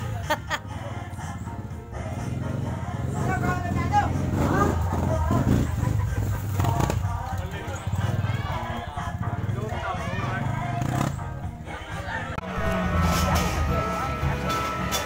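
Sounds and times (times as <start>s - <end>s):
music: 0.0s - 15.0s
indistinct voices: 0.6s - 15.0s.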